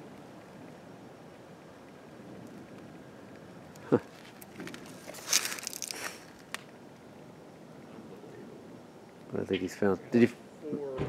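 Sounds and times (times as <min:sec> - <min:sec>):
rustling crunching scuff: 0:04.1 - 0:06.5.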